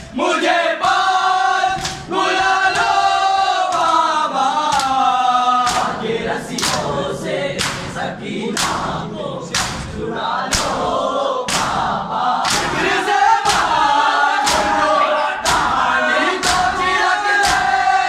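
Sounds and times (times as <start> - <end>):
men chanting in unison: 0.0 - 18.0
hands slapping chests: 1.7 - 3.1, 3.7 - 5.0, 5.6 - 6.9, 7.6 - 10.9, 11.5 - 13.8, 14.4 - 15.8, 16.4 - 17.8.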